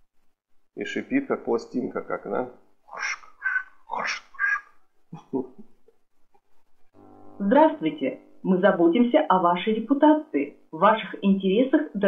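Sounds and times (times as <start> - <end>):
man laughing: 5.1 - 5.8.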